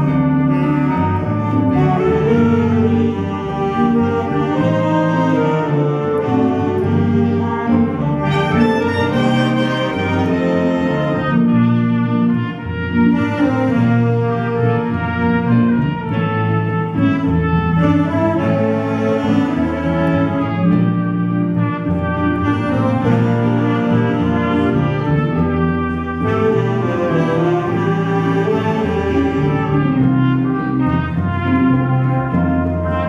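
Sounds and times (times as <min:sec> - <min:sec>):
swing big band playing: 0:00.0 - 0:33.0
trumpet solo: 0:00.0 - 0:33.0.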